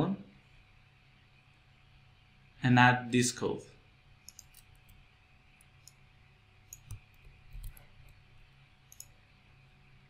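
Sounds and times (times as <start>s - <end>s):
computer mouse and keyboard clicks: 4.2s - 5.0s, 6.7s - 8.2s, 8.9s - 9.2s.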